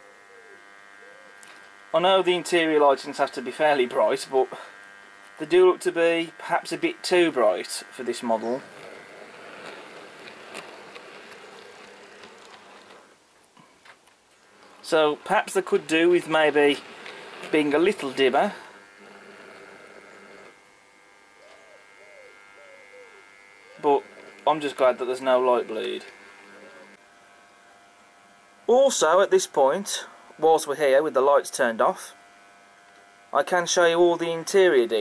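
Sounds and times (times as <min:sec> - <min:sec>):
model train motor buzzing: 0:00.0 - 0:13.2, 0:14.3 - 0:35.0
faint electrical hum: 0:00.0 - 0:35.0.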